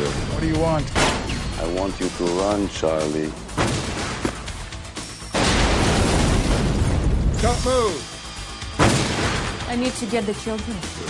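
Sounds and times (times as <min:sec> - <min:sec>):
music: 0:00.0 - 0:11.0
loud explosion blast: 0:05.3 - 0:07.9, 0:08.8 - 0:09.6.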